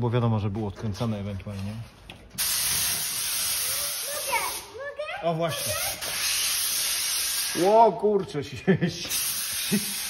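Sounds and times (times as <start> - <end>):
loud steady hiss: 2.4 - 4.8, 5.5 - 8.0, 9.0 - 10.0.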